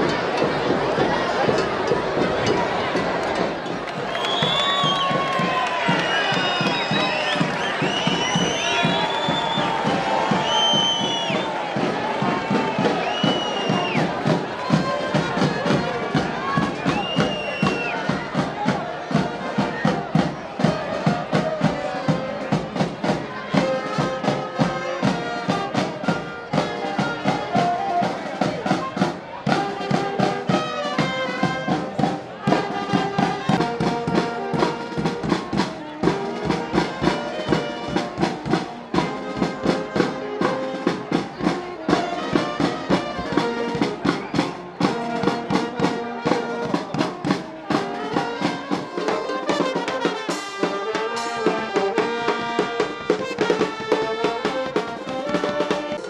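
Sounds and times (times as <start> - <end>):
crowd cheering: 0.0 - 56.0
marching brass band playing: 0.0 - 56.0.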